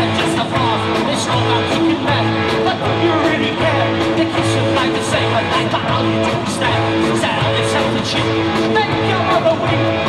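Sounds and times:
live punk rock band: 0.0 - 10.0.

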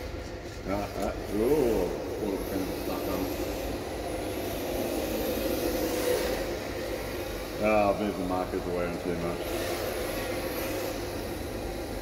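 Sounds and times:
high motor whine: 0.0 - 12.0
steady low hum: 0.0 - 12.0.

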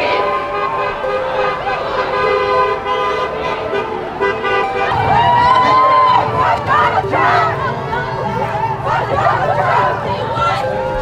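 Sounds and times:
car horns honking: 0.0 - 11.0
crowd shouting: 0.0 - 11.0.

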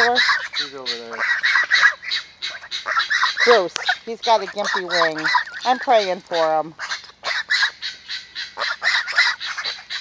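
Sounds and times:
guinea fowl alarm calls: 0.0 - 10.0.

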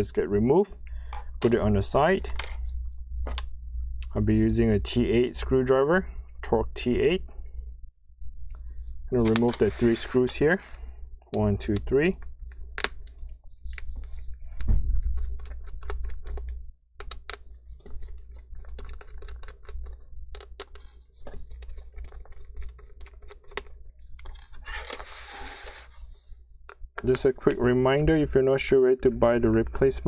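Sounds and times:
steady low hum: 0.0 - 30.0
brief scraping: 9.3 - 10.9.

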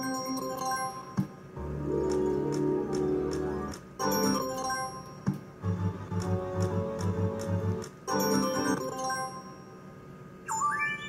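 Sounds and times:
slot machine win tune: 0.0 - 11.0
rising chime tones: 8.1 - 11.0.

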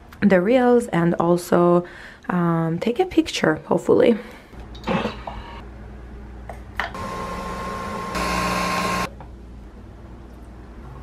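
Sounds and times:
coffee machine whirring hum: 6.9 - 9.1.

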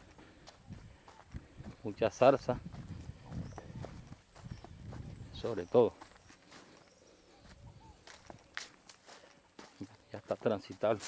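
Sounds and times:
footsteps crunching on dry leaves: 0.0 - 11.0.

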